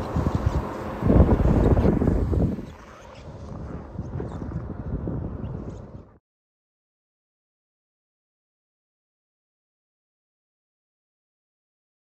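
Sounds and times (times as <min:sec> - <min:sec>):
wind buffeting microphone: 0:00.0 - 0:06.2.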